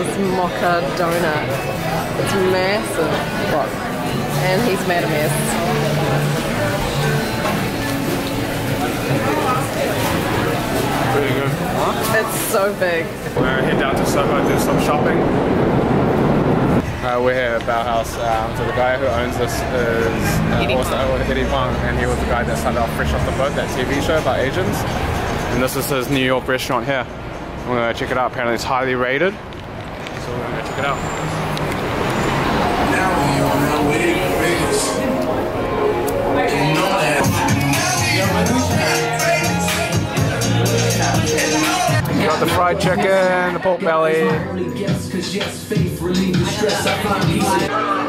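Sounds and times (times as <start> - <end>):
background music: 0.0 - 15.2, 32.3 - 48.0
bus engine humming: 0.0 - 26.4, 29.4 - 42.9
indistinct background voices: 0.0 - 27.8, 29.9 - 48.0
street traffic: 0.0 - 48.0.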